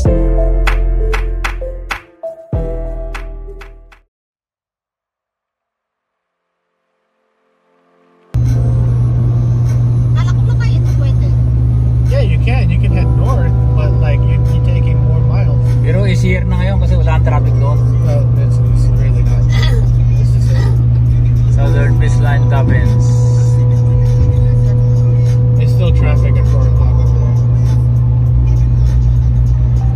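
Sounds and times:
car road and engine drone: 6.7s - 29.9s
people talking: 10.2s - 11.4s, 12.1s - 24.1s, 25.6s - 27.8s.

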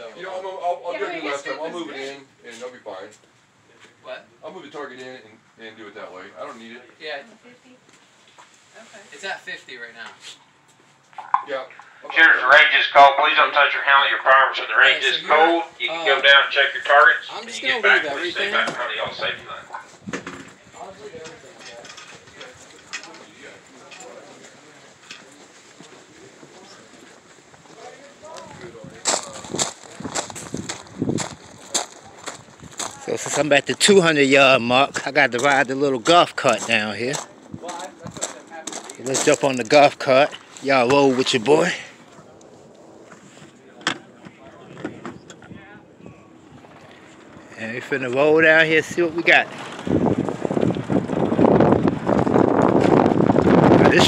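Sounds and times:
faint voices: 11.2s - 50.4s
footsteps crunching on gravel: 25.2s - 41.6s
footsteps on concrete: 25.4s - 33.9s.

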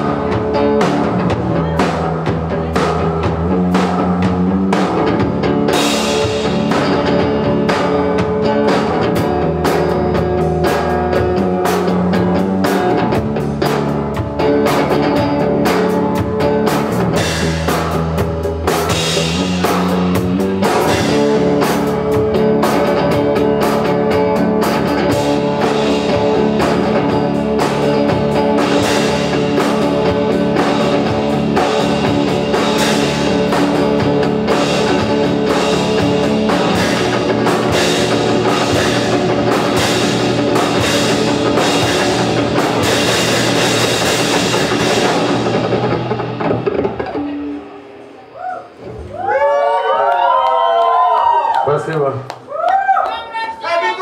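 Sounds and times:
drum kit playing: 0.0s - 48.2s
electric guitar chords: 0.0s - 48.2s.

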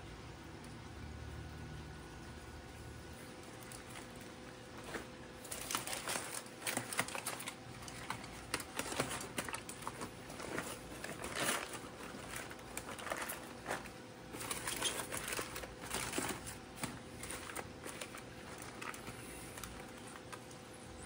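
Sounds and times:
aluminium foil crinkling: 3.2s - 21.0s.

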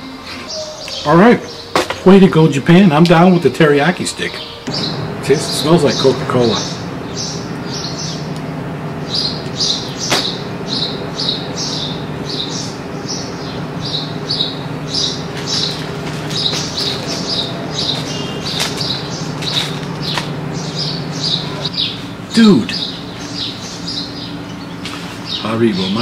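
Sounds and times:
steady low hum: 0.0s - 26.0s
small bird chirping: 4.3s - 22.1s.

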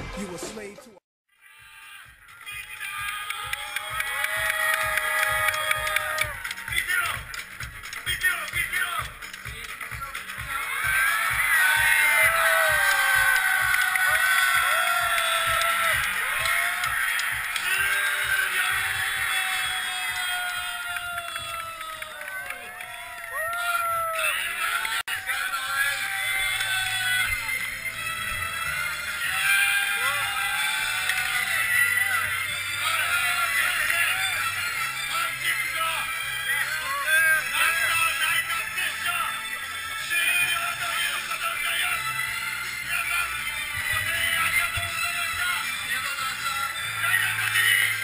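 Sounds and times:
hip-hop backing music: 1.7s - 48.0s.

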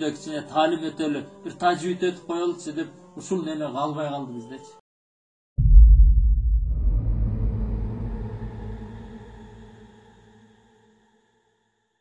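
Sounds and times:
deep synthesized boom: 5.6s - 9.6s.

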